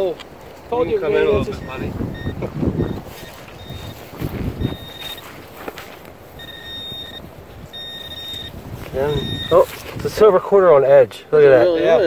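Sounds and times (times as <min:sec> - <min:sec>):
metal detector pinpointer beeps: 0:01.4 - 0:05.4, 0:06.4 - 0:09.8
scraping and rustling of soil: 0:03.0 - 0:06.4, 0:08.5 - 0:10.4.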